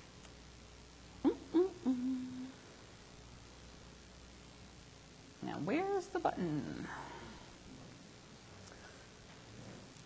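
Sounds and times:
woman humming: 0:01.2 - 0:02.6.

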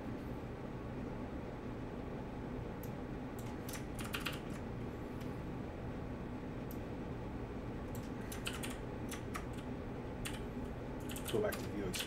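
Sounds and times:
low background hum: 0:00.0 - 0:12.0
keyboard keys clicking: 0:03.4 - 0:04.6, 0:07.9 - 0:09.6, 0:11.0 - 0:12.0.

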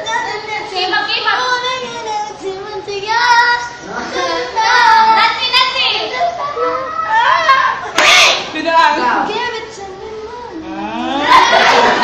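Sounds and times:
high-pitched voices singing pop: 0:00.0 - 0:05.2, 0:09.2 - 0:11.8
faint backing music: 0:00.0 - 0:12.0.

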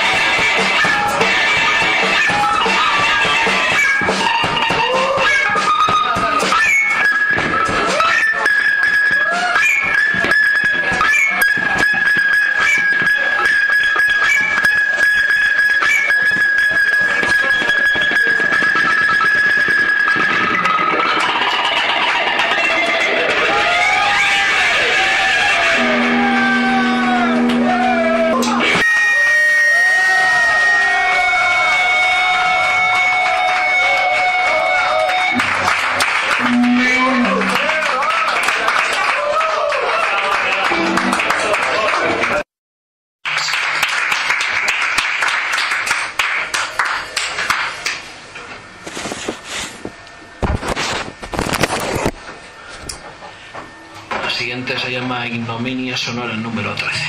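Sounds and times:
drum kit: 0:00.0 - 0:29.1
electric guitar: 0:18.5 - 0:37.9, 0:40.5 - 0:42.2.

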